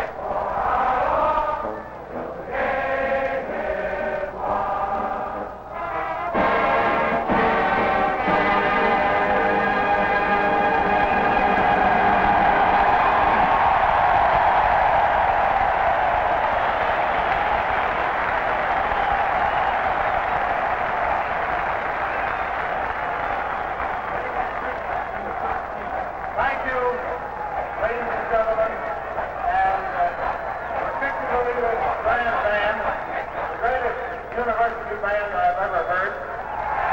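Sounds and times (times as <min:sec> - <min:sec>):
crowd voices: 0:00.0 - 0:36.9
stadium crowd cheering: 0:00.0 - 0:36.9
marching band held chords: 0:00.1 - 0:14.3.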